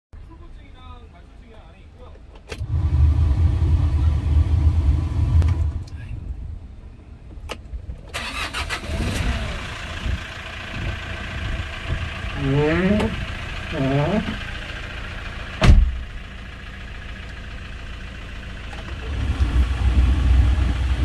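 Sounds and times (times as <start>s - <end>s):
diesel engine starting and idling: 2.4s - 6.6s, 8.0s - 21.0s.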